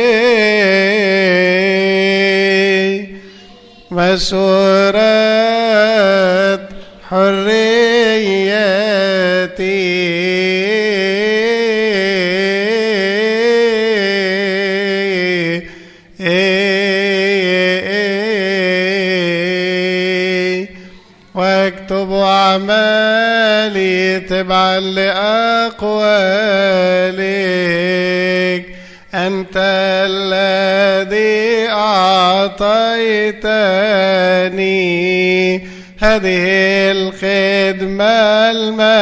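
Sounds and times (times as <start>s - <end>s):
man chanting a liturgical hymn: 0.0s - 39.0s.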